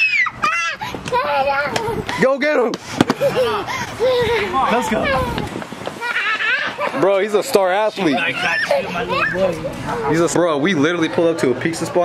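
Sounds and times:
toddler's excited wordless voice: 0.4s - 2.1s, 4.8s - 5.5s, 8.1s - 10.0s
other voices: 0.8s - 12.0s.

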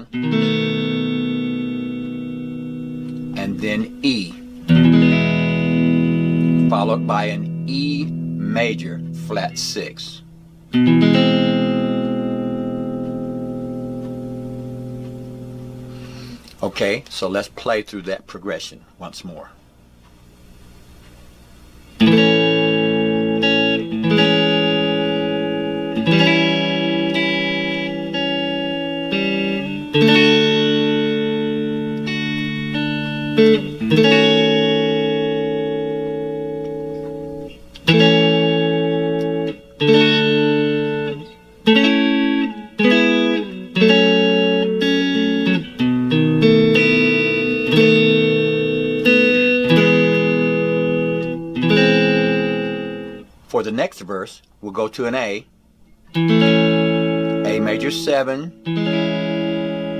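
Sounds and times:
clean electric guitar chords: 0.0s - 16.6s, 19.9s - 53.5s, 55.1s - 59.9s.

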